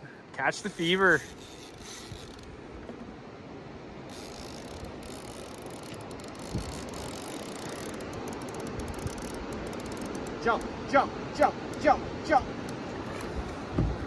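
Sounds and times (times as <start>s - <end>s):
river current and wind: 0.0s - 14.0s
fishing reel ticking: 0.5s - 2.5s, 4.1s - 10.7s
low thump: 13.7s - 14.0s.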